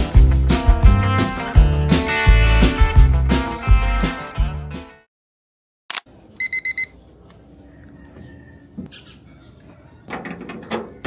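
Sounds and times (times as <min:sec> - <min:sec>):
alarm clock beeping: 0:06.4 - 0:06.9.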